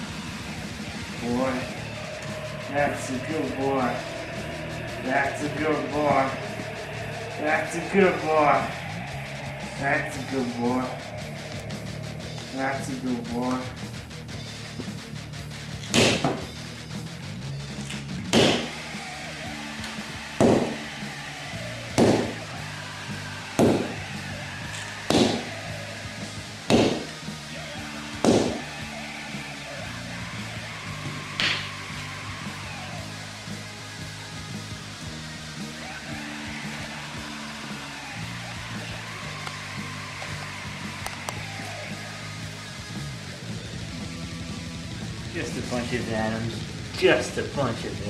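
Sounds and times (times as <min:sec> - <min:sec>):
background music low notes: 0:00.0 - 0:48.0
sharp whacks: 0:15.8 - 0:16.5, 0:17.9 - 0:18.7, 0:22.0 - 0:22.4, 0:23.6 - 0:23.9, 0:25.1 - 0:25.5, 0:26.7 - 0:27.1, 0:28.2 - 0:28.6.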